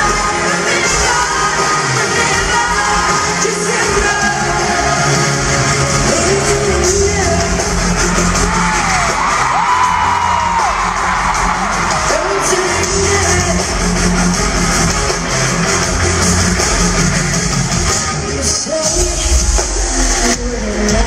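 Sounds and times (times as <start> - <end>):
live pop-rock music: 0.0 - 21.0
crowd whoops: 8.0 - 13.0.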